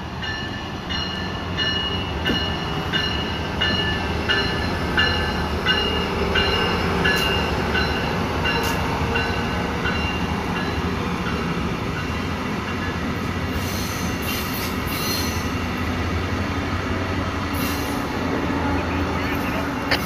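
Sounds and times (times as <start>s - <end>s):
train wheels rumbling on rail: 0.0s - 20.0s.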